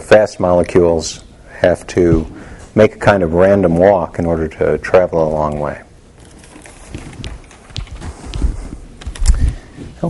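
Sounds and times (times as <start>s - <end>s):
soft footsteps on hard floor: 6.9s - 10.0s.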